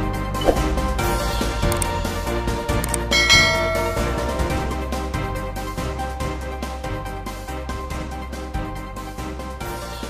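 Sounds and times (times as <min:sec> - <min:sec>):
background music: 0:00.0 - 0:10.0
notification bell ding: 0:03.1 - 0:04.8.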